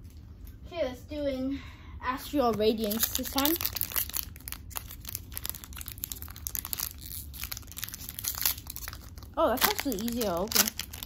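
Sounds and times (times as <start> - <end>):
foil wrapper crinkling: 2.7 - 11.0.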